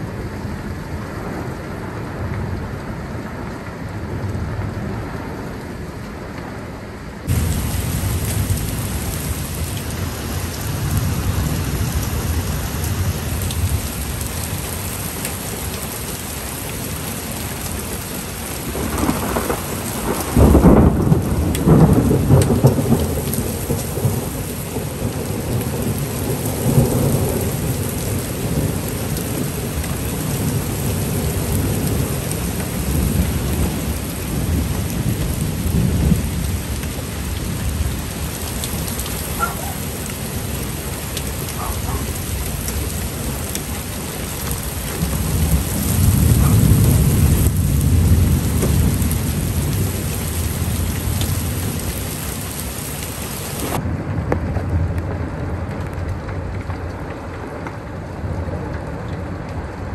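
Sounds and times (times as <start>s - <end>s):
heavy rain hissing: 7.2s - 53.9s
thunder clap and rumble: 7.2s - 59.9s.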